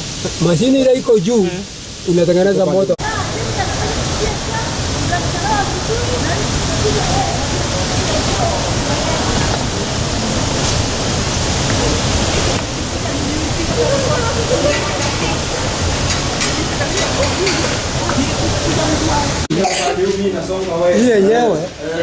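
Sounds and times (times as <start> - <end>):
water rushing through turbine: 0.0 - 19.5.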